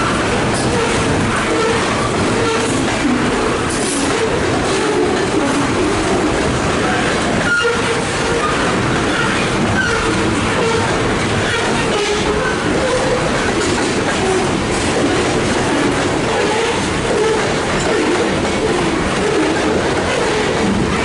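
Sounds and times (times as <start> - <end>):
freight train wheels clattering on rail: 0.0 - 21.0.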